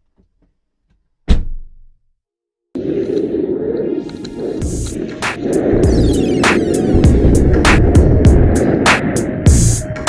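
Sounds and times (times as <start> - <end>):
heavy thud sound effect: 1.3 - 1.9
snowboard scraping on snow: 2.8 - 9.3
wind rumbling on microphone: 2.8 - 10.0.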